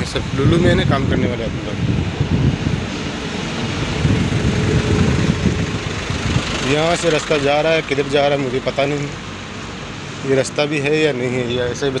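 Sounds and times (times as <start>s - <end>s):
vehicle engine idling: 3.6s - 12.0s.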